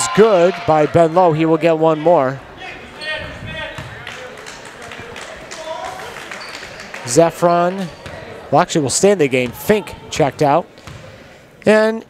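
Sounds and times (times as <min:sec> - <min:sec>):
faint voices echoing in a hall: 0:00.0 - 0:12.0.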